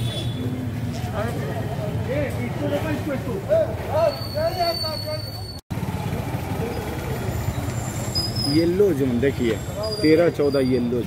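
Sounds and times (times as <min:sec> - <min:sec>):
vehicle engines humming: 0:05.7 - 0:11.0.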